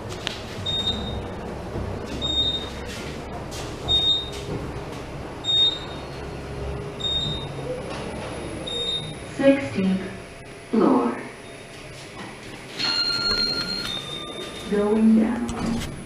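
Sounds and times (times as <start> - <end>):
elevator ride rumble: 0.0 - 16.0.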